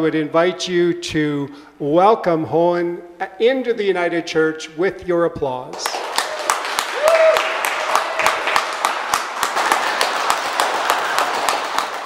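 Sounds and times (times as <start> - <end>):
people applauding: 5.8 - 12.0.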